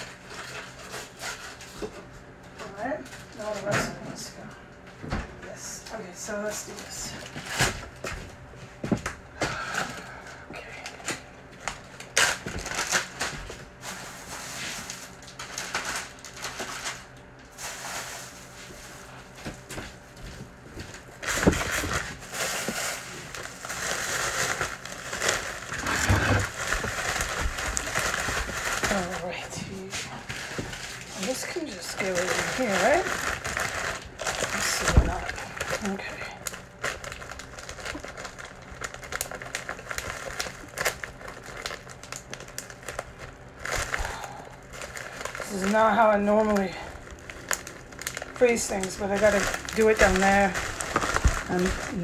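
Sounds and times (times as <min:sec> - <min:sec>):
foil and plastic crinkling: 0:00.0 - 0:52.0.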